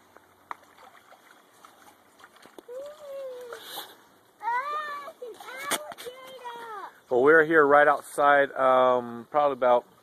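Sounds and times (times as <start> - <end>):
creek water trickling: 0.0 - 10.0.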